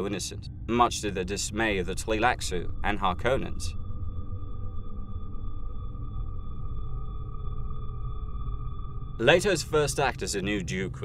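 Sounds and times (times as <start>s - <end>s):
low rumbling bass: 0.0s - 11.0s.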